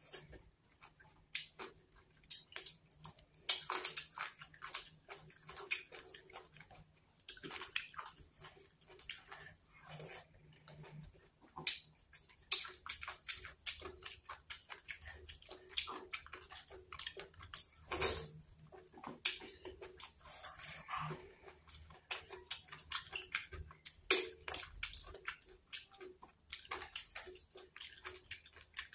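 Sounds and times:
person chewing food: 0:00.0 - 0:28.9.

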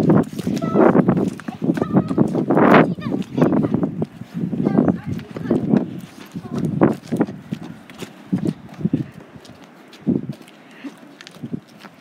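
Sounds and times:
voices: 0:00.3 - 0:09.3.

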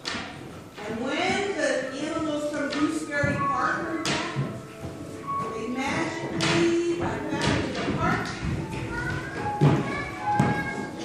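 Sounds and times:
voices in echoing hall: 0:00.0 - 0:11.0.

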